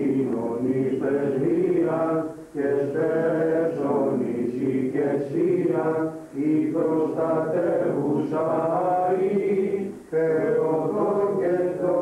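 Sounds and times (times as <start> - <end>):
voices chanting a hymn: 0.0 - 12.0.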